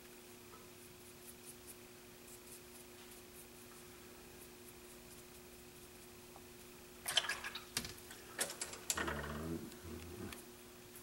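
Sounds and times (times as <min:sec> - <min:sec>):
low voice-like murmur: 0:09.0 - 0:10.4.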